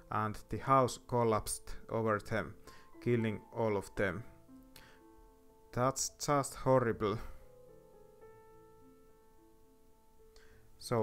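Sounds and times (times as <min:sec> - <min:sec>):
person speaking: 0:00.0 - 0:04.4, 0:05.7 - 0:07.4, 0:10.8 - 0:11.0
soft piano music: 0:00.0 - 0:11.0.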